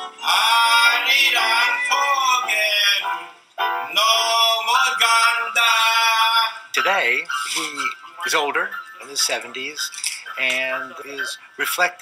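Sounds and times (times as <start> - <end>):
music with gliding singing voice: 0.0 - 12.0.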